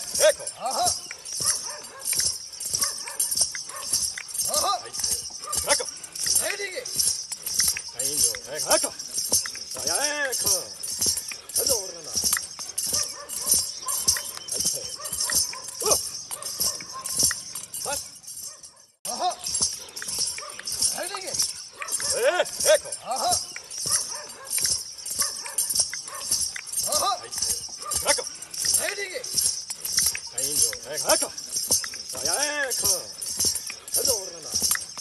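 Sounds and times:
bells jingling: 0:00.0 - 0:35.0.

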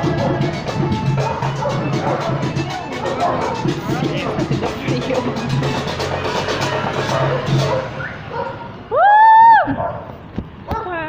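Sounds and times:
band music over loudspeakers: 0:00.0 - 0:08.1
drum beats: 0:00.0 - 0:08.2
bass line: 0:00.0 - 0:08.3.

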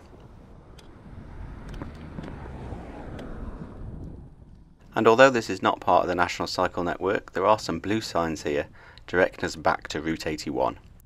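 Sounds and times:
wind on microphone: 0:00.0 - 0:05.0
car passing: 0:00.0 - 0:07.1.

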